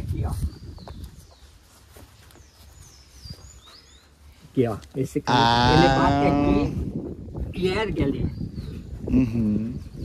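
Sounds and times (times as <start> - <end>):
small bird chirps: 0.0 - 4.5.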